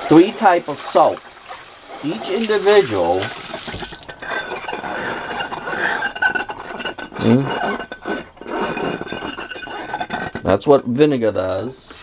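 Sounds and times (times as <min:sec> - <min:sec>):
tap water running into bowl: 0:00.0 - 0:04.3
fingers squeaking on clean bowl: 0:03.9 - 0:10.5.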